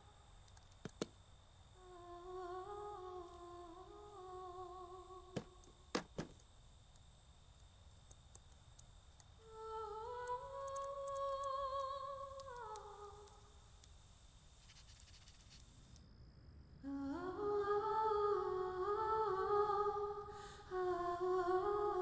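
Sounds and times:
sharp clicks: 0:00.4 - 0:01.2, 0:05.3 - 0:07.1, 0:07.9 - 0:14.0
person humming a tune: 0:01.8 - 0:05.7, 0:09.4 - 0:13.6.

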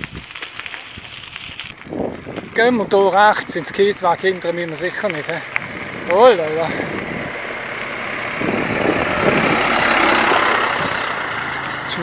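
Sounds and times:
heavy vehicle passing: 0:02.6 - 0:12.0.

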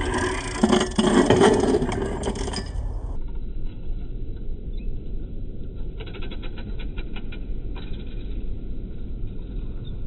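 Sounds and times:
bike tyres rumbling on concrete: 0:00.0 - 0:03.2.

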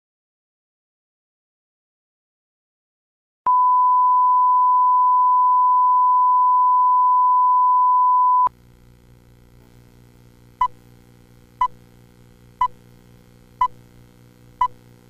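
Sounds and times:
pure test tone: 0:03.5 - 0:08.5
faint low hum and hiss: 0:08.5 - 0:15.0.

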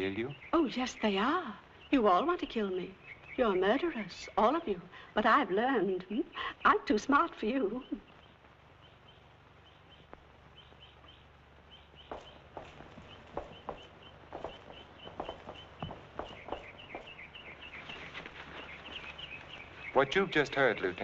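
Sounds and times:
small birds chirping: 0:00.0 - 0:21.0
quiet footsteps walking: 0:07.9 - 0:20.4.

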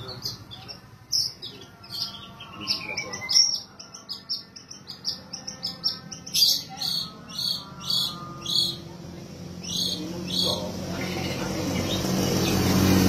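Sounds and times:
shrike singing: 0:00.0 - 0:13.0.

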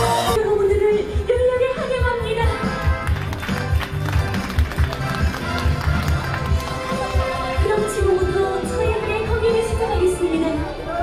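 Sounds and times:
live pop band playing: 0:00.0 - 0:00.4.

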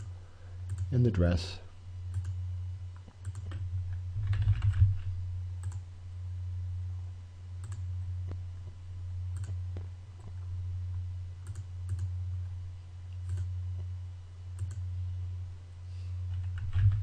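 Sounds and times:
steady low hum: 0:00.0 - 0:17.0
keyboard typing: 0:03.2 - 0:03.6, 0:04.2 - 0:05.0, 0:07.6 - 0:07.9, 0:09.4 - 0:09.6, 0:11.4 - 0:12.1, 0:14.6 - 0:14.8, 0:16.3 - 0:17.0.

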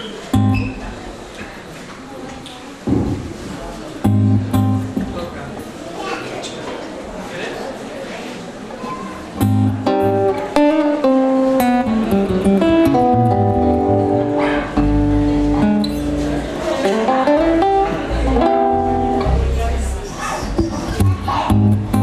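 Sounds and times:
acoustic guitar chords: 0:00.3 - 0:01.1, 0:04.0 - 0:05.3, 0:09.4 - 0:19.8, 0:20.6 - 0:22.0.

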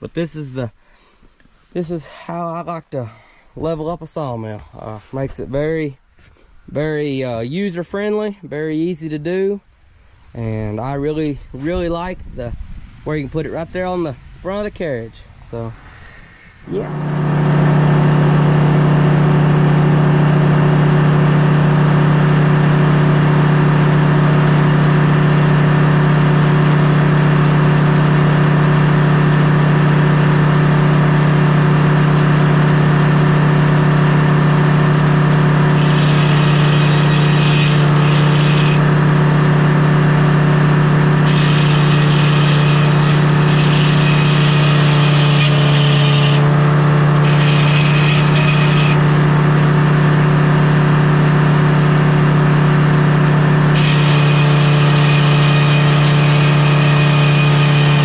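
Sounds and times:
sawmill machine hum: 0:13.0 - 0:58.0
circular saw cutting log: 0:13.1 - 0:58.0.

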